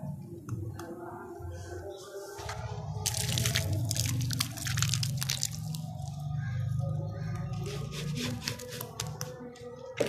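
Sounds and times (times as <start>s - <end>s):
wet slurry splattering: 3.0s - 6.1s
scattered drips: 3.0s - 6.2s.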